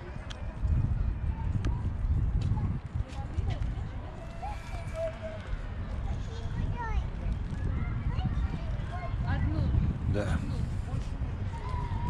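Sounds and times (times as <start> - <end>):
faint voices: 0.0 - 12.0
wind rumble on microphone: 0.0 - 12.0.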